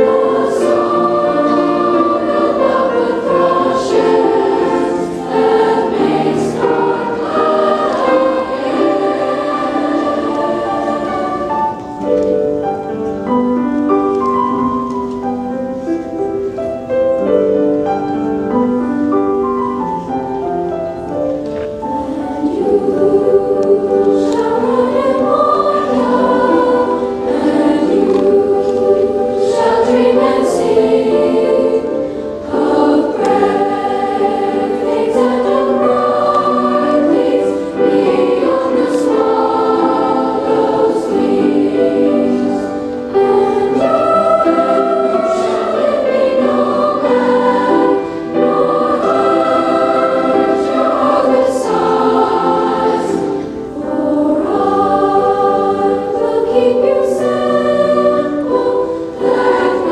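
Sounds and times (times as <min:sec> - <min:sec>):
youth choir singing in parts: 0:00.0 - 0:12.8, 0:21.8 - 0:59.9.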